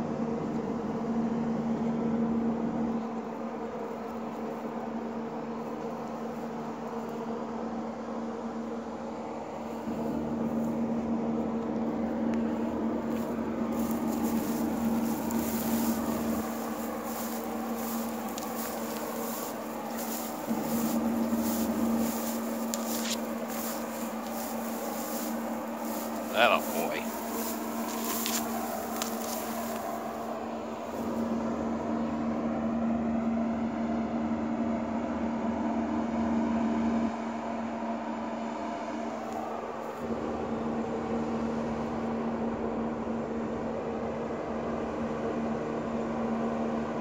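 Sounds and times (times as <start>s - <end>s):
electrical hum: 0.0s - 36.2s
footsteps through dry grass: 9.6s - 31.5s.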